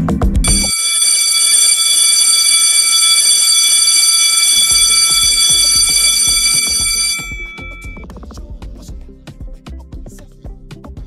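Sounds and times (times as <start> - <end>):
low thumping beat: 0.0 - 0.7, 4.7 - 11.0
electric bell ringing: 0.4 - 8.0.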